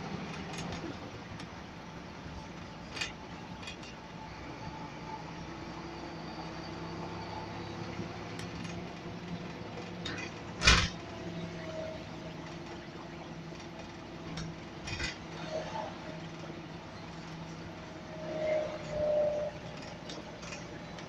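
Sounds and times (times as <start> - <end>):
bus engine droning: 0.0 - 21.0.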